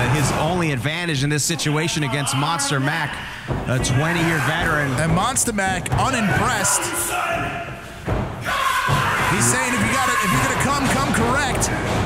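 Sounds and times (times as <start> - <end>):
man yelling: 8.4 - 11.7.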